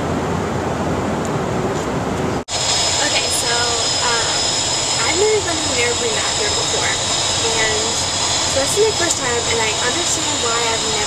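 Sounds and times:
jet airliner cabin noise: 0.0 - 11.0
steady high whine: 0.0 - 11.0.

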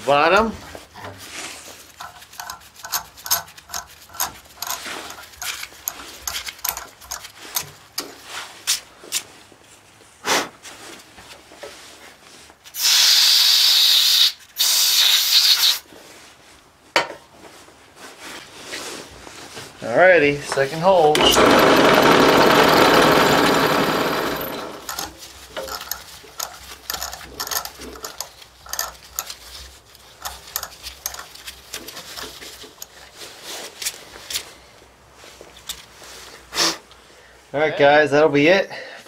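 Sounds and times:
tap clicking and scraping in metal: 1.9 - 8.1, 24.9 - 33.0
loud bursts of hissing: 12.8 - 15.8.

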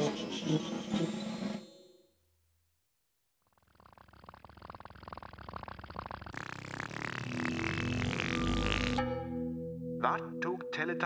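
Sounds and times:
rapid buzzing rattle: 3.4 - 9.0.

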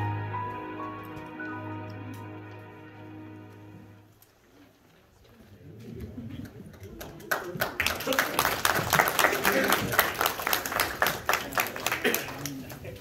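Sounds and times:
congregation applauding: 6.7 - 13.0.

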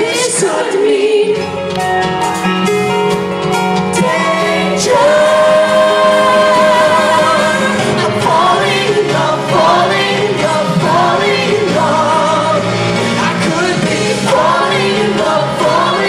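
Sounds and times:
lead vocal singing: 0.0 - 1.8, 3.8 - 16.0
live band playing pop song: 0.0 - 16.0.

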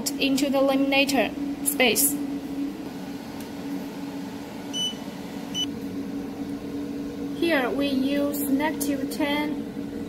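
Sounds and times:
laminator humming: 0.0 - 10.0.

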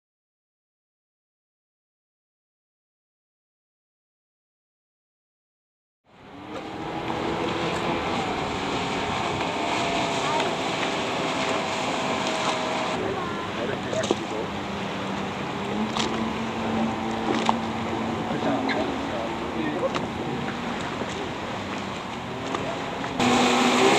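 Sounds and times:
outboard motor running: 6.1 - 23.9
water noise: 6.1 - 23.9
wind noise: 6.7 - 13.0.

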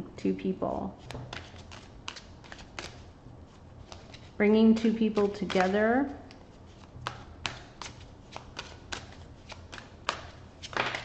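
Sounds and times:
cards being shuffled: 1.0 - 11.0.

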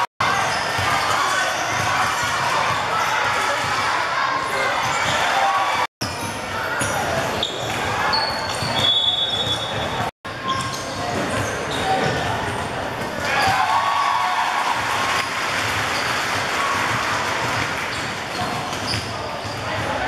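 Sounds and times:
spectators chattering and calling: 0.0 - 20.0.

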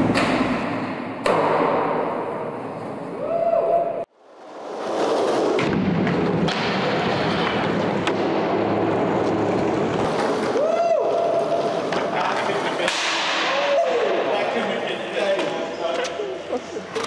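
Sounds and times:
skateboard wheels rolling on concrete: 1.9 - 17.0.

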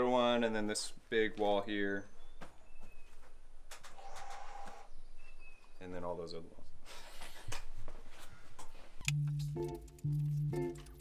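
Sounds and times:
faint bird chirp: 1.8 - 6.2.

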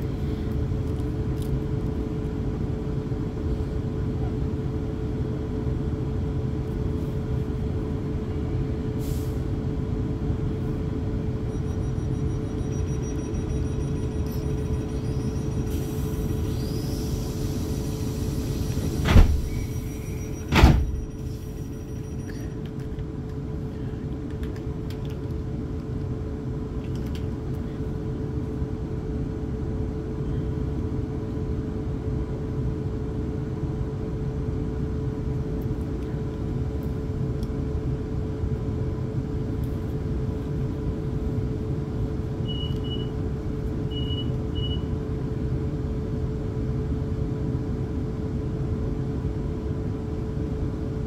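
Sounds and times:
train interior hum and rumble: 0.0 - 51.0
equipment whine: 10.9 - 24.7
short high beeps: 11.5 - 15.7, 19.5 - 22.6.

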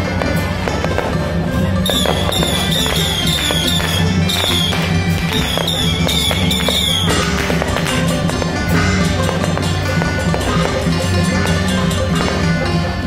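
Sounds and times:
fireworks bursting and crackling: 0.0 - 13.0
procession music: 0.0 - 13.0.

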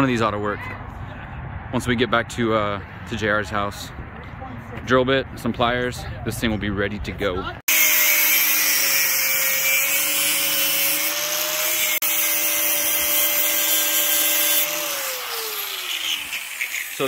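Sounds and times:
angle grinder cutting steel: 7.7 - 17.0.

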